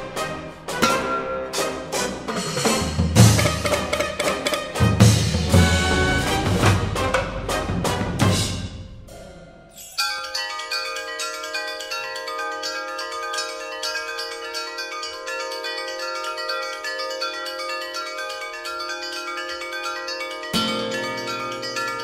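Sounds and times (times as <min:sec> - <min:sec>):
metal and glass chimes struck: 0:00.8 - 0:01.8, 0:09.1 - 0:22.0.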